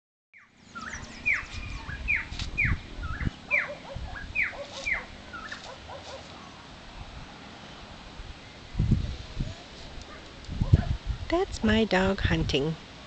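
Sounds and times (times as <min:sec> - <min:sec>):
animal high falling calls: 0:00.8 - 0:06.5.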